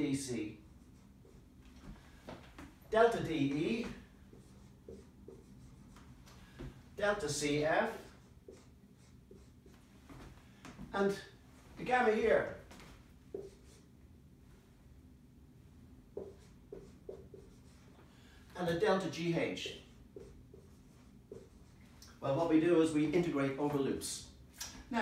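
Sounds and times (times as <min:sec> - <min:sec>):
marker writing on whiteboard: 0:00.5 - 0:12.6, 0:13.3 - 0:13.9, 0:16.1 - 0:18.0, 0:18.6 - 0:22.6.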